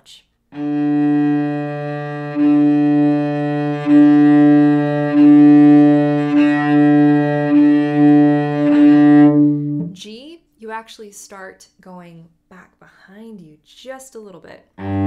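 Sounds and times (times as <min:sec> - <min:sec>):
cello open string bowed: 0:00.5 - 0:10.0, 0:14.8 - 0:15.0.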